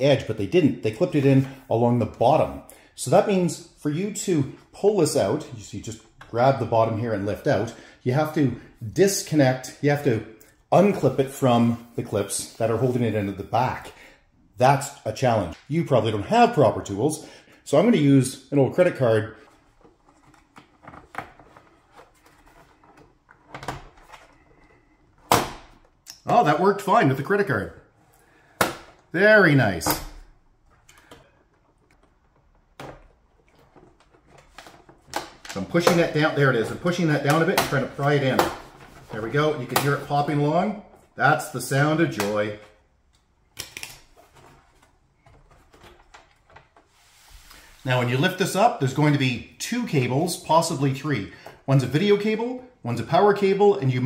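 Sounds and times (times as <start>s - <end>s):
plastic scraping and clicking: 19.5s - 24.9s.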